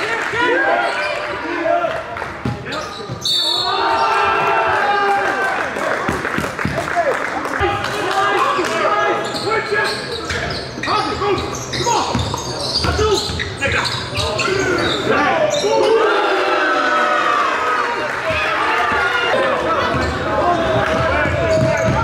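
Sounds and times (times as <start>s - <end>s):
sneaker squeaks: 2.4s - 4.0s, 9.2s - 16.0s, 21.2s - 22.0s.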